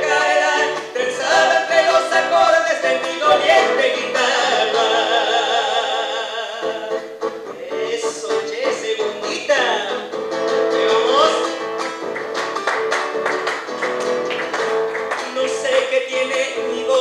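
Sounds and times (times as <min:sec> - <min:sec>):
person singing: 0:00.0 - 0:11.5, 0:15.2 - 0:17.0
acoustic guitar strumming: 0:00.0 - 0:17.0.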